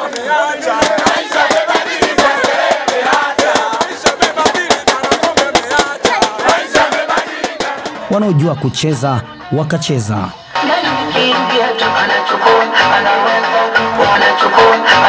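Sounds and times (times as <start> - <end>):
crowd singing and chanting: 0.0 - 15.0
rapid drum strokes: 0.7 - 8.2.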